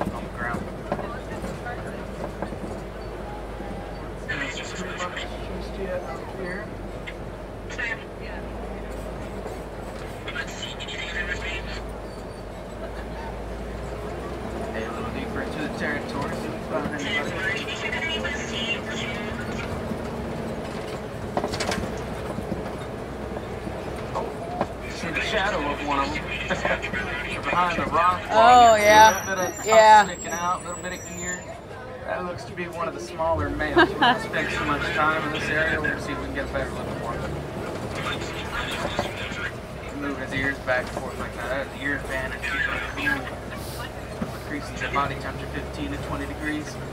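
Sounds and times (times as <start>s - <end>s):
faint voices of riders: 0.0s - 19.9s, 23.4s - 46.9s
truck engine rumble: 0.0s - 46.9s
person talking: 28.3s - 30.2s, 33.8s - 34.3s.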